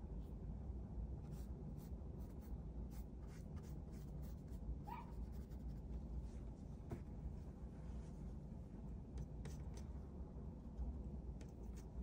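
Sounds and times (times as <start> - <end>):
pen scratching on paper: 1.3 - 4.6, 5.2 - 5.8.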